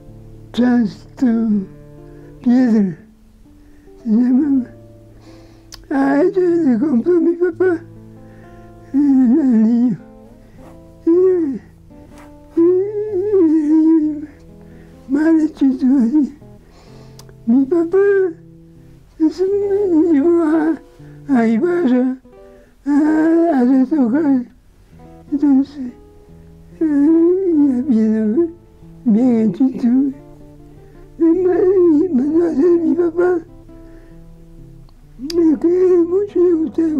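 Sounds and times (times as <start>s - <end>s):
soft instrumental music: 0.0s - 36.9s
elderly man speaking: 0.5s - 1.8s, 2.4s - 3.1s, 4.0s - 4.8s, 5.7s - 7.9s, 8.8s - 10.1s, 11.0s - 14.5s, 15.1s - 16.4s, 17.4s - 18.5s, 19.1s - 24.5s, 25.3s - 26.0s, 26.8s - 30.3s, 31.1s - 33.6s, 35.2s - 36.9s.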